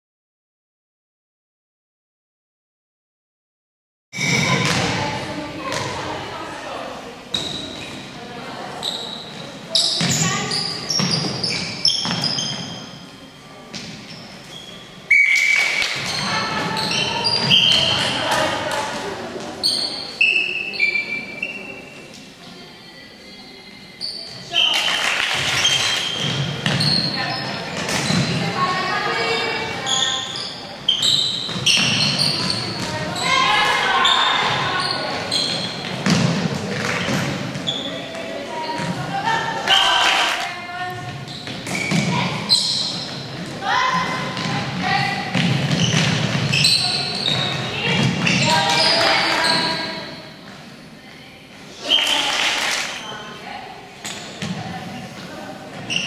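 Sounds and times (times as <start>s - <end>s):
ball bouncing on floor: 4.2s - 5.0s, 35.8s - 39.0s, 44.3s - 49.7s
players calling out in hall: 24.0s - 50.4s, 51.7s - 56.0s.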